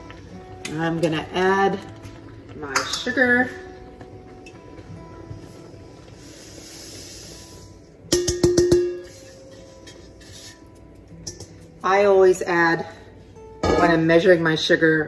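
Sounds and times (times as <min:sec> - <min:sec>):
metal bowl knocking on pot: 0:08.1 - 0:09.2, 0:13.6 - 0:14.0.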